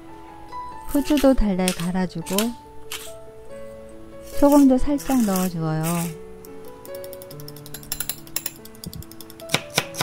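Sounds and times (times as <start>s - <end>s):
background music: 0.0s - 10.0s
knife chopping on wooden board: 1.0s - 3.1s, 8.9s - 10.0s.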